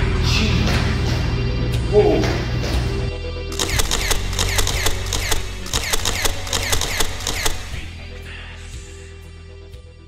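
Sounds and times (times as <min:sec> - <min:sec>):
ratchet-like ticking clicks: 0:03.5 - 0:07.8
low bass drone: 0:03.5 - 0:09.1.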